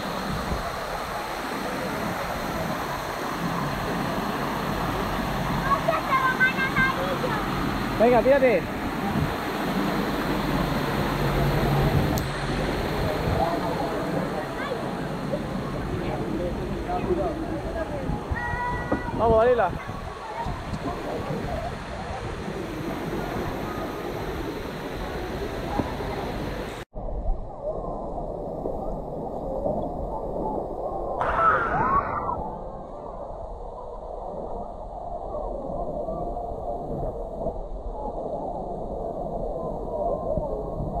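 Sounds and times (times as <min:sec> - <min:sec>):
water splashing on a water slide: 0:00.0 - 0:26.8.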